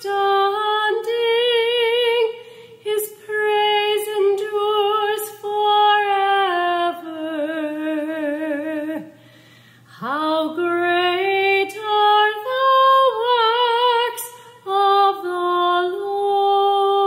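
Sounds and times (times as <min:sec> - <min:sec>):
woman singing unaccompanied: 0:00.0 - 0:09.2, 0:09.9 - 0:17.0.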